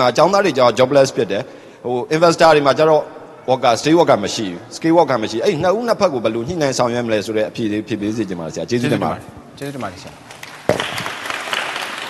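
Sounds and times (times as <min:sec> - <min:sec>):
audience applause: 0:10.3 - 0:12.0.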